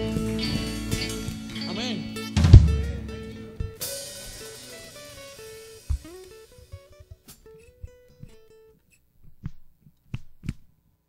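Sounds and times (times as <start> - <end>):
stage equipment thumps and knocks: 2.4 - 4.0, 5.9 - 6.9.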